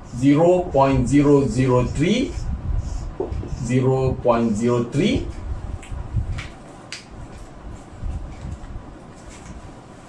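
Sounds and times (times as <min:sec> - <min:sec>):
footsteps and body movement thuds: 0:05.7 - 0:10.0.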